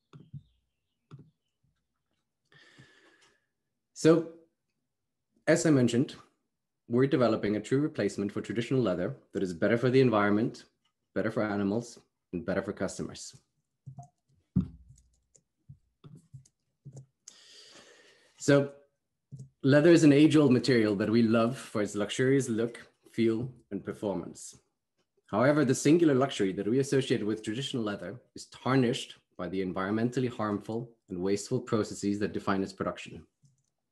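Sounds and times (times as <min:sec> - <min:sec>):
soft clicks and knocks: 0:00.1 - 0:01.4
breath in: 0:02.5 - 0:03.5, 0:17.3 - 0:18.4
low thump: 0:14.6 - 0:14.9.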